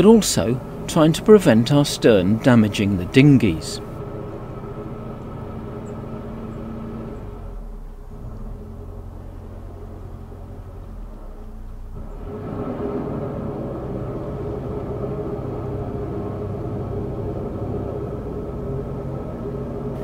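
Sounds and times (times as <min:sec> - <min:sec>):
diesel boat engine rumbling: 0:00.0 - 0:20.0.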